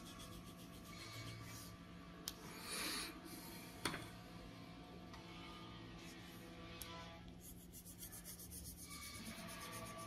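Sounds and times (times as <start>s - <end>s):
colored pencil scratching on paper: 0.0s - 1.7s, 7.4s - 10.0s
faint background music: 0.0s - 10.0s.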